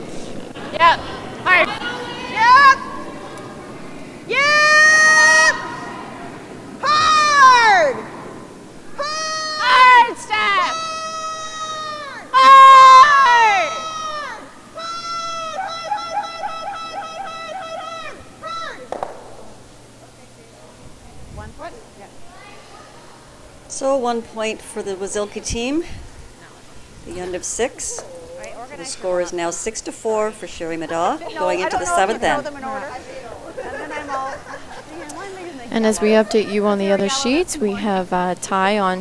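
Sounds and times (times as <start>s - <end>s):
people shouting long calls: 0.6s - 19.0s.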